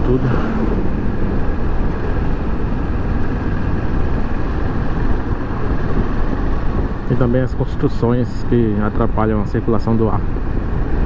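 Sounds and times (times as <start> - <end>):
wind rushing on microphone: 0.0 - 11.0.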